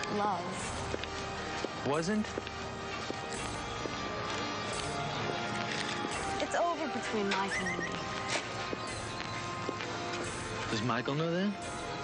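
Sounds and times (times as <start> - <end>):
background music: 0.0 - 12.0
horse whinnying: 7.4 - 8.1.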